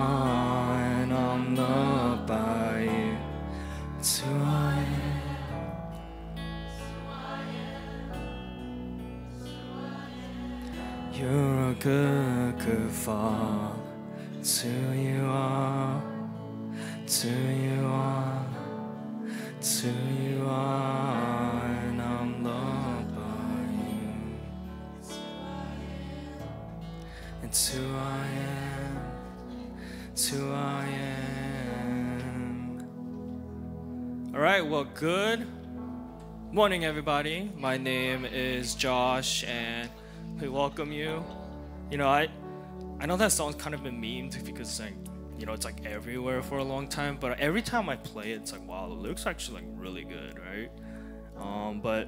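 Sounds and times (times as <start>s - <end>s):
singers holding long notes: 0.0s - 33.4s
acoustic guitar: 0.0s - 43.0s
man and woman singing: 4.0s - 5.8s, 19.8s - 26.5s, 27.4s - 29.3s.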